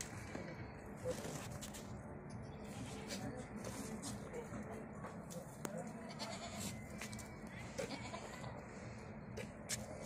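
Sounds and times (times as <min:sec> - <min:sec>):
low background noise: 0:00.0 - 0:10.0
goats bleating: 0:06.1 - 0:06.8, 0:07.8 - 0:08.6.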